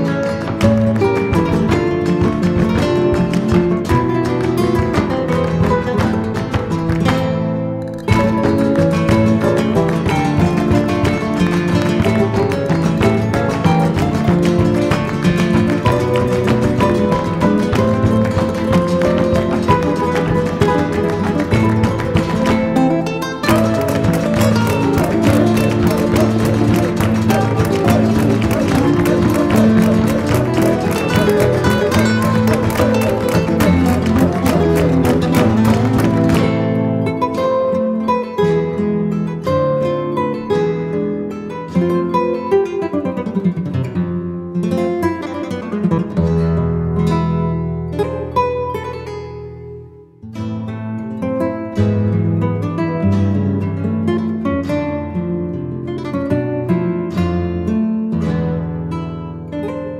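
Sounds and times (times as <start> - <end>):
flamenco acoustic guitar: 0.0 - 59.9.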